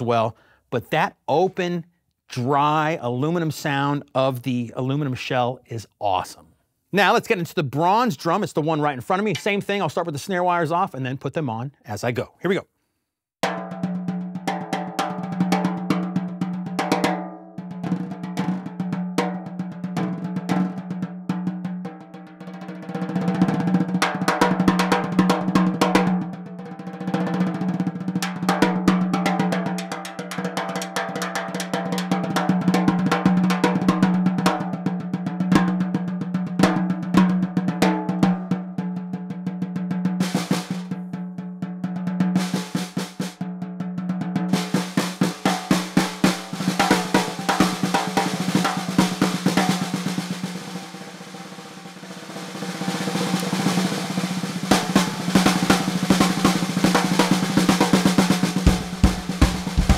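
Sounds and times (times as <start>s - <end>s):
snare drum strokes and rolls: 9.1s - 9.9s, 13.4s - 41.2s, 42.2s - 43.5s, 44.2s - 59.9s.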